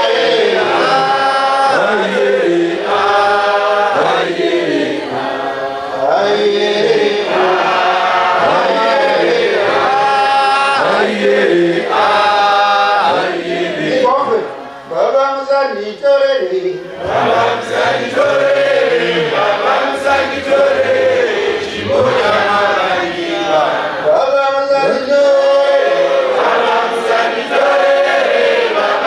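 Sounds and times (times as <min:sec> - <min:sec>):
choir singing a hymn: 0:00.0 - 0:15.0, 0:16.8 - 0:29.0.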